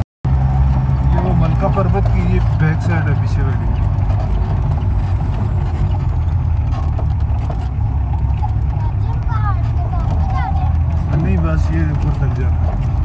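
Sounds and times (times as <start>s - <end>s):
car engine running: 0.2s - 13.0s
body knocks and rattles: 0.3s - 13.0s.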